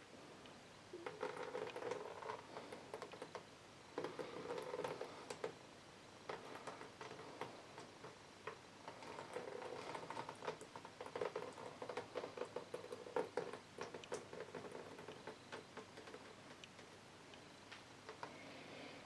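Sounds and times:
fingers tapping record: 0.9 - 5.6, 6.2 - 18.4
paint dripping into plastic bin: 0.9 - 5.6, 6.2 - 18.5.

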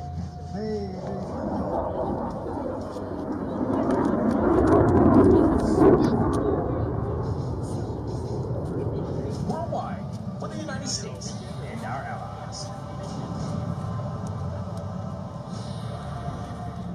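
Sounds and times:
propeller aircraft engines droning: 0.0 - 16.9.

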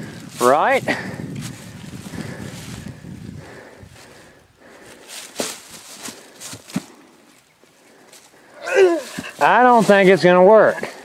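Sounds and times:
dry leaves rustling and crunching: 5.0 - 6.8, 8.9 - 11.0.

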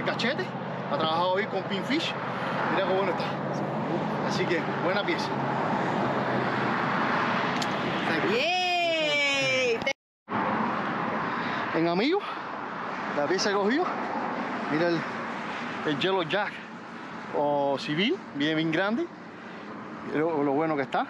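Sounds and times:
man talking: 0.0 - 5.4, 11.7 - 12.4, 13.1 - 14.0, 14.7 - 15.1, 15.8 - 16.7, 17.3 - 19.2, 20.1 - 21.0
outdoor background noise: 0.0 - 21.0.

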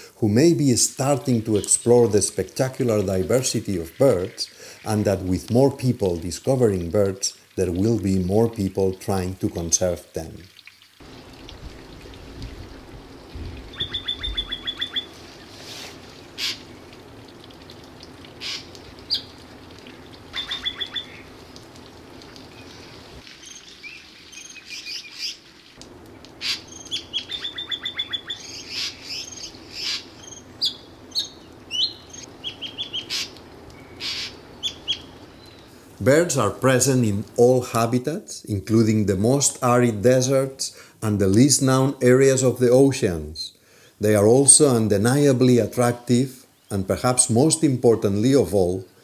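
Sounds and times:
rapid high bird trill: 13.6 - 15.6, 18.4 - 19.4, 20.3 - 21.3, 26.4 - 35.6
bird chirps and whistles: 13.7 - 15.1.

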